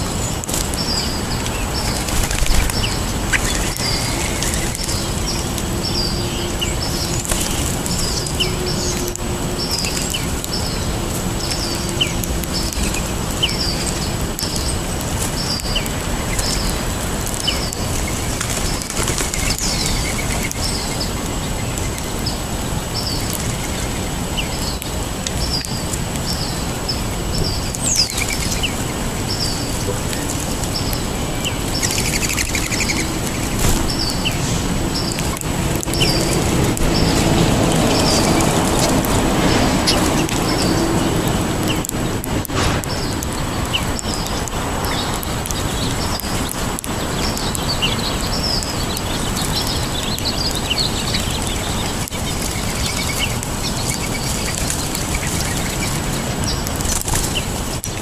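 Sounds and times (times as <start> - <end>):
small birds chirping: 0.0 - 58.0
wing flutters: 0.4 - 6.1, 11.4 - 20.8.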